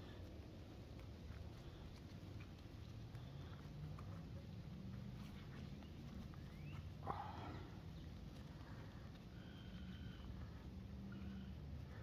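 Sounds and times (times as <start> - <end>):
soil and roots rustling and crackling: 0.0 - 12.0.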